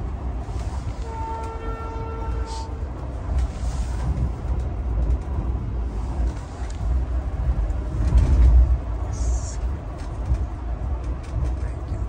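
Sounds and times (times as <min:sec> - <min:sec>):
train wheels rumbling: 0:00.0 - 0:12.0.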